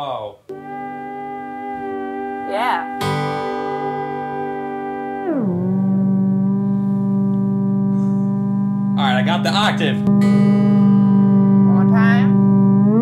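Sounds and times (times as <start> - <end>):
theremin chord gliding down: 0.5 - 13.0.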